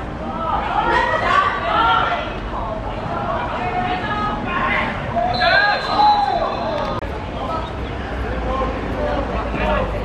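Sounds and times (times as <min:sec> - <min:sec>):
people shouting: 0:00.3 - 0:02.4.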